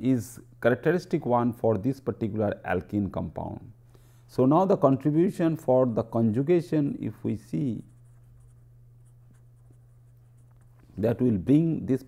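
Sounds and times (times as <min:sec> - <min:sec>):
low steady hum: 0:00.0 - 0:12.0
marker pen scratching on paper: 0:07.8 - 0:10.9.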